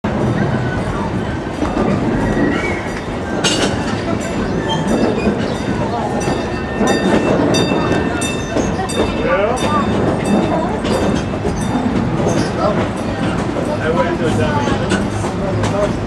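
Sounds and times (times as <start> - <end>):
train wheels rumbling on track: 0.0 - 16.0
rail clicks: 0.1 - 16.0.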